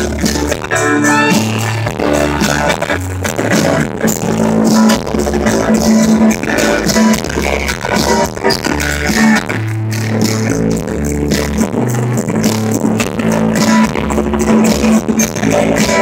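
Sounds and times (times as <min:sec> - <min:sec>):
bass guitar low notes: 0:00.0 - 0:16.0
drums keeping steady beat: 0:00.0 - 0:16.0
keyboards: 0:00.0 - 0:16.0.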